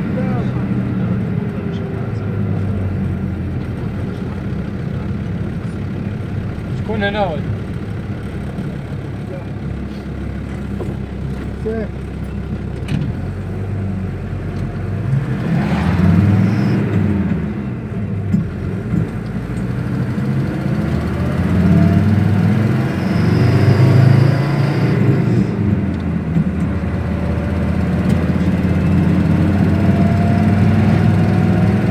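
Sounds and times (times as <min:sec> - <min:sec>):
vehicle engine and road noise: 0:00.0 - 0:31.9.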